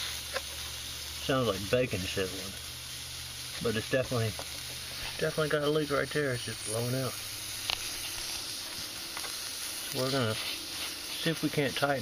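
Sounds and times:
gas hissing through bubbles: 0:00.0 - 0:12.0.

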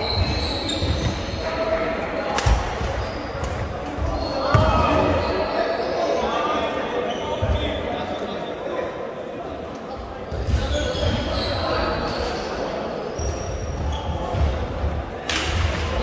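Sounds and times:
voices echoing in hall: 0:00.0 - 0:16.0.

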